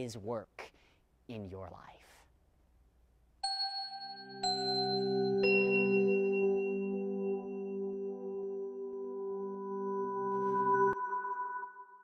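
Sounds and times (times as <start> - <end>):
bell-like chime ringing: 3.4 - 12.0
low held tone: 3.4 - 12.0.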